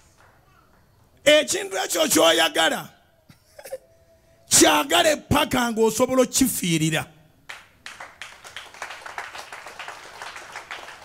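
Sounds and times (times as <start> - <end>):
congregation clapping: 7.5 - 11.0.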